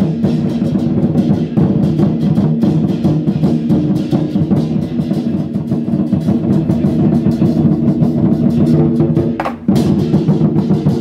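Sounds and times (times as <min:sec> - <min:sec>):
barrel drums beaten rapidly: 0:00.0 - 0:11.0
hand cymbals clashing: 0:00.0 - 0:11.0.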